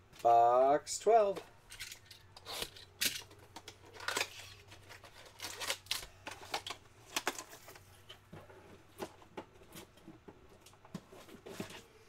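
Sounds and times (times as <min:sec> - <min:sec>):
foil pack crinkling: 0:02.0 - 0:07.9.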